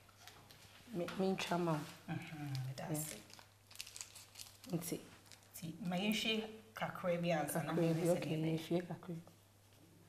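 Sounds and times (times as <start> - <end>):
crinkling handling noises: 0.0 - 6.3
woman speaking: 4.7 - 9.4.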